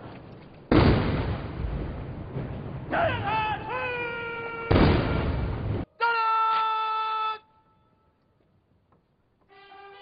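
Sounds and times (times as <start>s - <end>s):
cannon blast: 0.7s - 2.9s, 4.7s - 5.8s
person shouting drill command: 5.9s - 7.5s.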